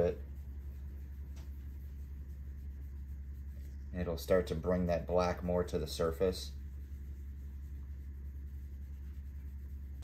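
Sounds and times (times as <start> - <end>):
steady low hum: 0.0 - 10.0
towel rubbing a surface: 0.0 - 10.0.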